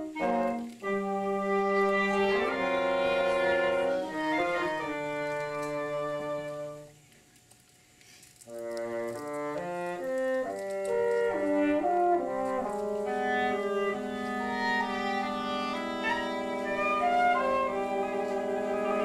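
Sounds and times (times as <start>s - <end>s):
bassoon: 0.0s - 7.0s, 8.5s - 19.0s
flute: 0.0s - 7.0s, 8.5s - 19.0s
french horn: 0.0s - 7.0s, 8.5s - 19.0s
clarinet: 0.0s - 7.1s, 8.5s - 19.0s.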